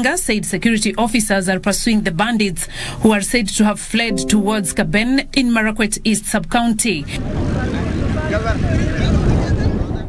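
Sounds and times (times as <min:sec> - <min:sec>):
wind rumbling on microphone: 0:07.2 - 0:10.0.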